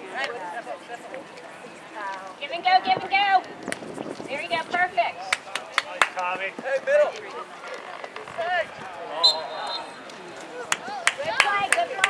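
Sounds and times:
referee's whistle blast: 0:09.2 - 0:10.0.

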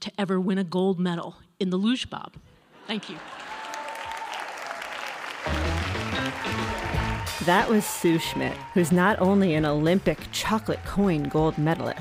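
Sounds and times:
audience applauding: 0:03.0 - 0:12.0
music: 0:05.4 - 0:12.0.

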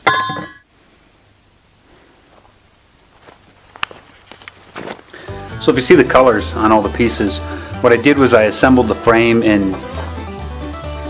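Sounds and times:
insect chirping trill: 0:00.0 - 0:04.4.

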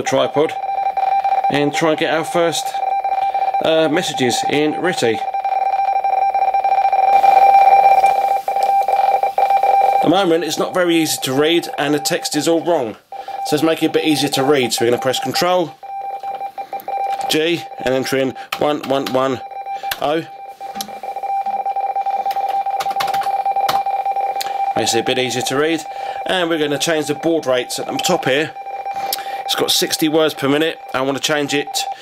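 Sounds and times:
two-tone radio teletype warble: 0:00.0 - 0:32.0.

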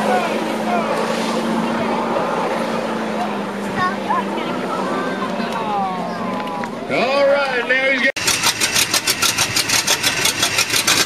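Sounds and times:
distant vehicle engine running hard: 0:00.0 - 0:06.9, 0:08.2 - 0:11.0
people's voices: 0:00.0 - 0:08.1.

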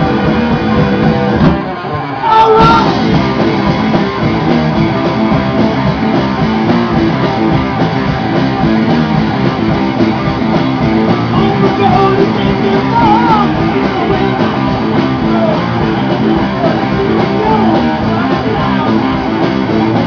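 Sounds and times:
electric guitars: 0:00.0 - 0:20.0
heavy metal band playing: 0:00.0 - 0:20.0.

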